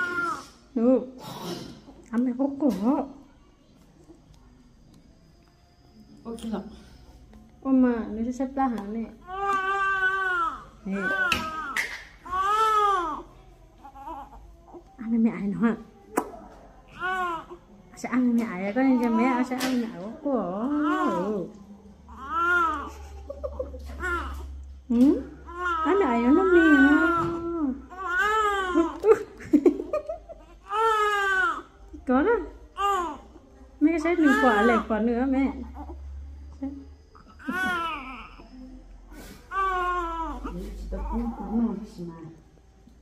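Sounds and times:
baby crying: 9.2 - 13.3, 34.2 - 34.9.

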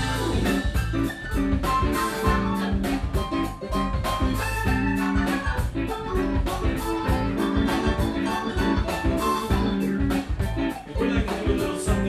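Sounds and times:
drum kit beat: 0.0 - 12.0
electric guitar: 0.0 - 12.0
keyboard chords: 0.0 - 12.0.

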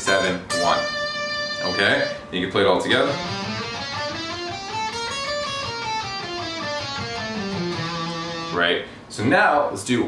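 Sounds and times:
electric guitar scale run: 0.0 - 8.6.

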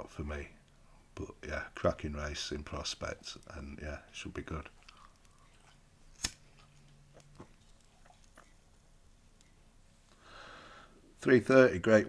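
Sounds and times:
soft breath out: 10.1 - 11.1.

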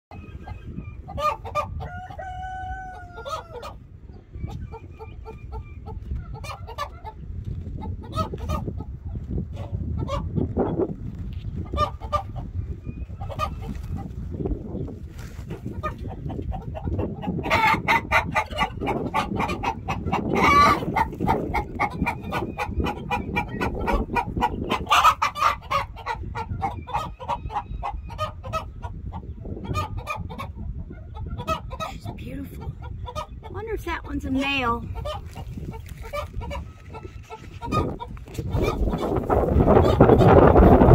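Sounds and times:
chickens clucking and squawking: 0.1 - 40.9
rooster crowing: 1.7 - 3.8.

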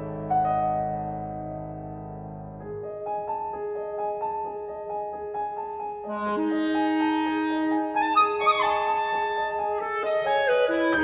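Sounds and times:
clarinet: 5.6 - 11.0.

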